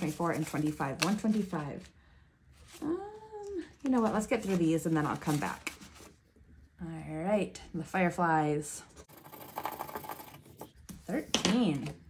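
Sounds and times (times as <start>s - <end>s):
paper scratching and rustling: 0.0s - 1.9s, 3.8s - 6.2s.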